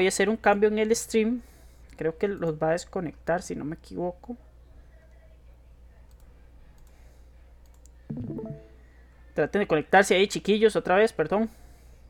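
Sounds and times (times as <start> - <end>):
computer mouse clicks: 6.1 - 7.0.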